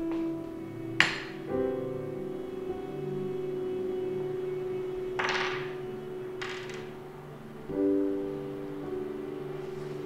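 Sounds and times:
soft piano chord: 0.0s - 10.0s.

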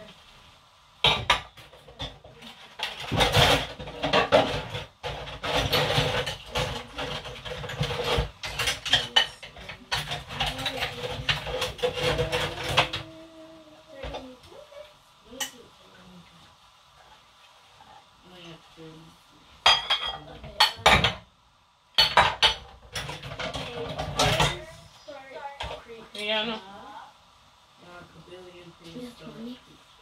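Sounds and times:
dishes clinking and clattering: 1.0s - 13.2s, 19.6s - 21.3s, 22.0s - 24.8s.

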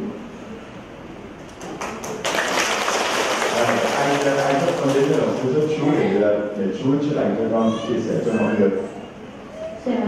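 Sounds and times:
audience applause: 1.5s - 5.8s.

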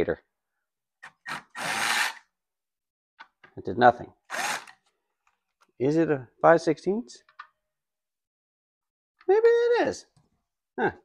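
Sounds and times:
cordless drill running: 1.0s - 2.2s, 4.3s - 4.8s.

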